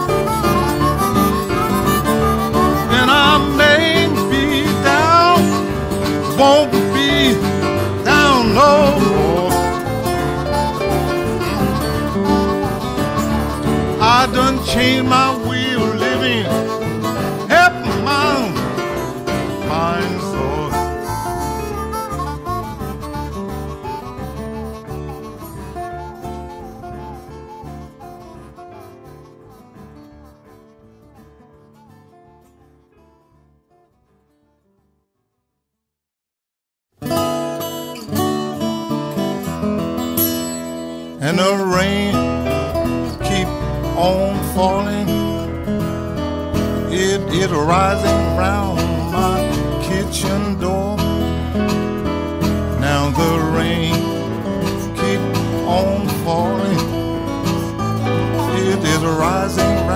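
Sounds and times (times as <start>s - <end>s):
harmonica bending notes: 0.0s - 33.5s, 37.1s - 59.9s
acoustic blues music: 0.0s - 34.8s, 37.0s - 59.9s
acoustic guitar picking: 0.0s - 34.8s, 37.0s - 59.9s.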